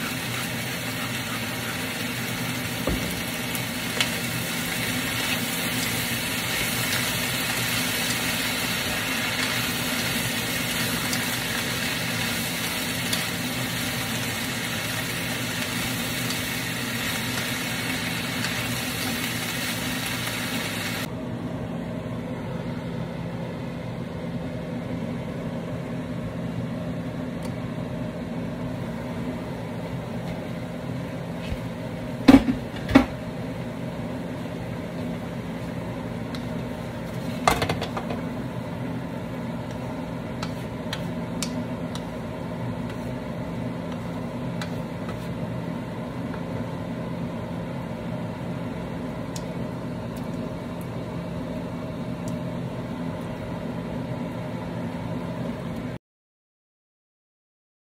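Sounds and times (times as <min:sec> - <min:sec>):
vegetables sizzling in wok: 0:00.0 - 0:21.1.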